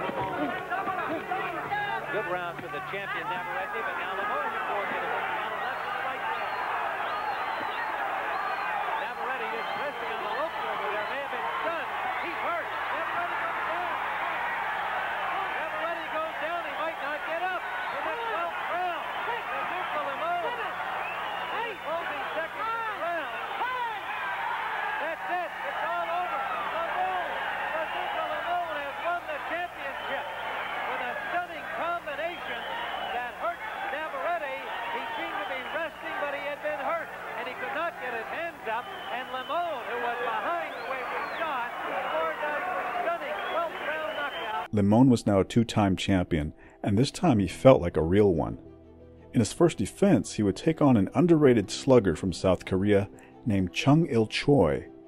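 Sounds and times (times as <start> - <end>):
crowd shouting and cheering: 0.0 - 44.8.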